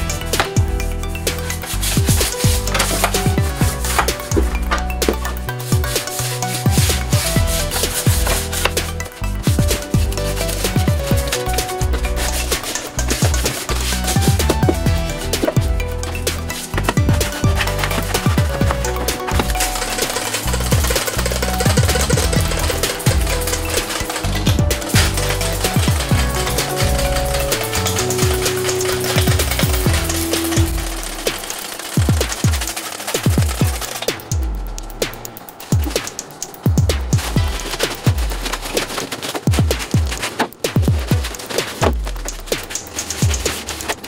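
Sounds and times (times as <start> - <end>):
electronic music with bass: 0.0 - 44.0
stiff brush scrubbing: 0.0 - 44.0.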